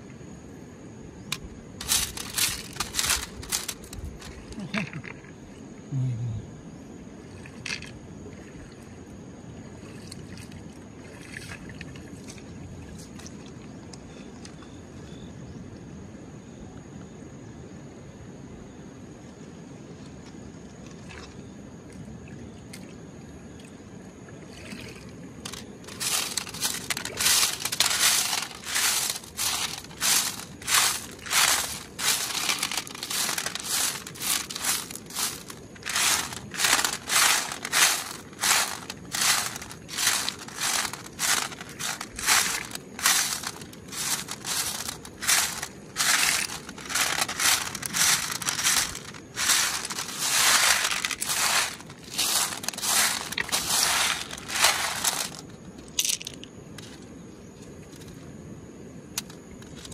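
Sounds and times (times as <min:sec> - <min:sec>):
pebbles rattling on metal sieve: 0:01.8 - 0:04.4, 0:25.4 - 0:56.4.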